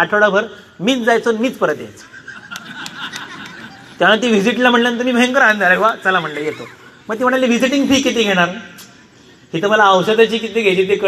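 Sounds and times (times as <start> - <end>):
person laughing quietly: 6.0 - 7.0.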